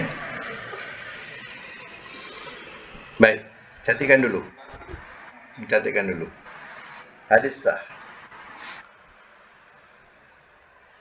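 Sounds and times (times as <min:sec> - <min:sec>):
faint steady microphone hiss: 0:00.0 - 0:11.0.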